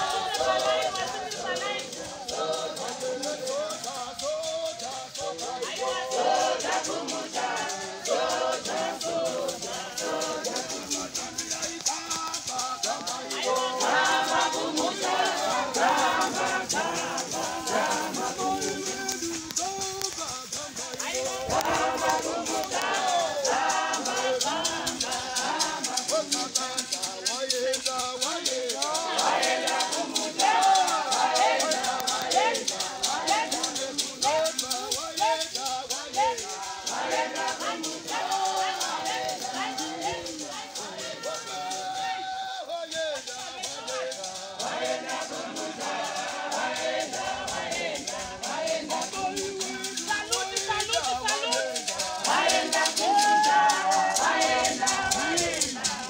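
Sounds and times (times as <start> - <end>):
congregation singing: 0.0 - 56.0
shaker rhythm: 0.0 - 56.0.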